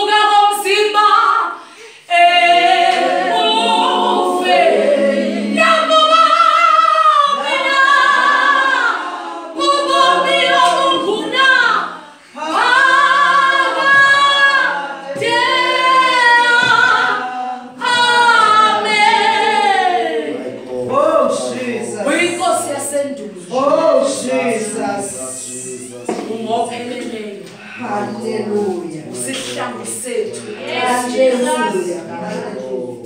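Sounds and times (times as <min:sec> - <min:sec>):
group singing a cappella: 0:00.0 - 0:33.0.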